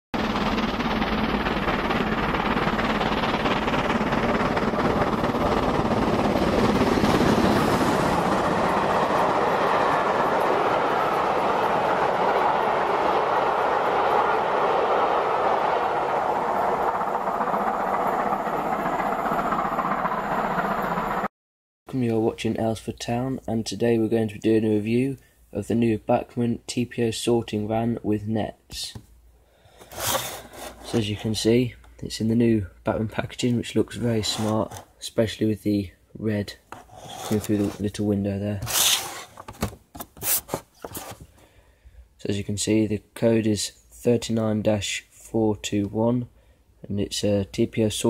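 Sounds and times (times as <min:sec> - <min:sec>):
model train wheels rumbling on rails: 0:29.8 - 0:31.2, 0:34.0 - 0:34.9, 0:38.6 - 0:39.5.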